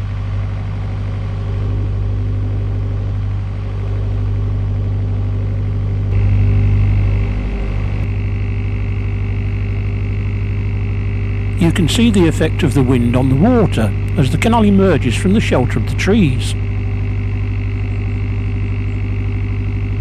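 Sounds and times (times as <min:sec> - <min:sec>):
boat diesel engine throbbing: 0:00.0 - 0:20.0
steady high hum: 0:00.0 - 0:20.0.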